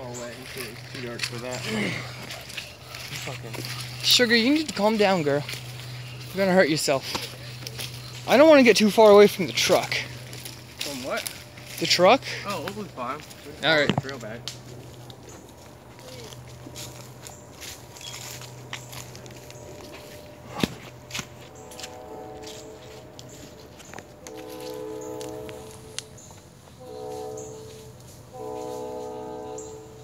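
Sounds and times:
footsteps on leaf litter: 0:00.0 - 0:30.0
train horn blasts: 0:00.2 - 0:14.9, 0:16.0 - 0:30.0.

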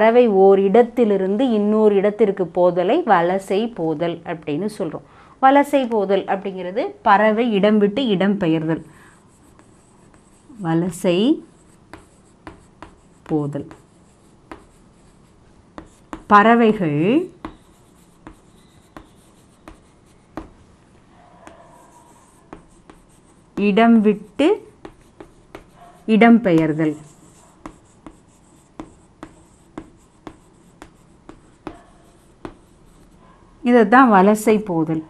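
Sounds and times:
chalk scraping on chalkboard: 0:09.3 - 0:20.5, 0:21.4 - 0:33.2
chalk tapping on board: 0:09.4 - 0:20.6, 0:21.5 - 0:33.2.

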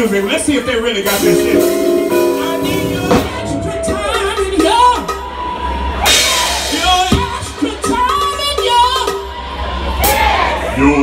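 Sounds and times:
bass guitar: 0:00.0 - 0:08.2.

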